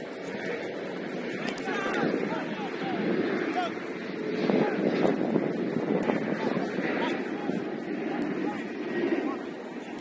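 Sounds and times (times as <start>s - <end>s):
noisy background: 0.0s - 10.0s
distant shouts of footballers: 0.2s - 3.9s, 6.1s - 9.6s.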